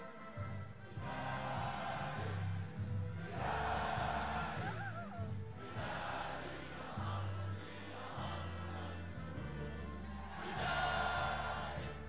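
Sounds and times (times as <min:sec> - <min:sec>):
national anthem playing: 0:00.0 - 0:12.0
crowd singing along: 0:01.0 - 0:12.0.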